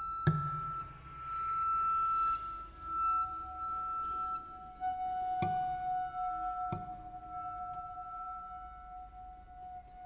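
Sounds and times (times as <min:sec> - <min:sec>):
lower held tone: 0:00.0 - 0:10.0.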